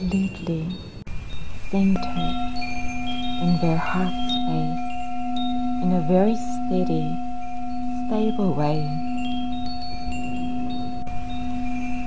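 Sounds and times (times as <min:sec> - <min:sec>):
wind chime tinkles: 0:00.0 - 0:12.0.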